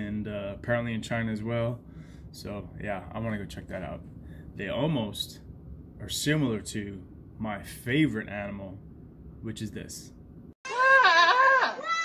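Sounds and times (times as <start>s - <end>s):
goat screaming: 10.6s - 12.0s.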